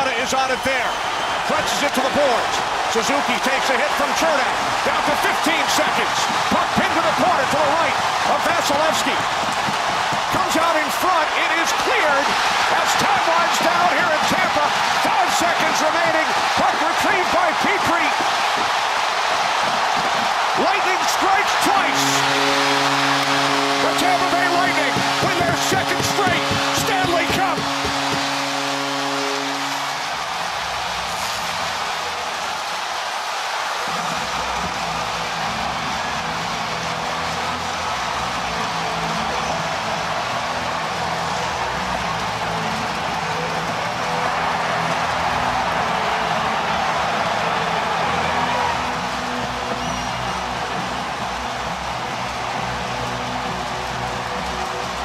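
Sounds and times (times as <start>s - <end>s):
crowd cheering: 0.0s - 55.0s
multi-tone arena horn: 0.1s - 55.0s
arena music with steady beat: 21.7s - 29.7s.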